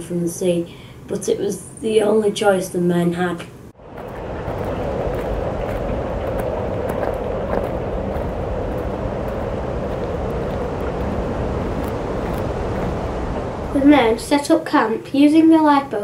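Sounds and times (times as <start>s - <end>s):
steady rushing noise: 3.7s - 15.6s.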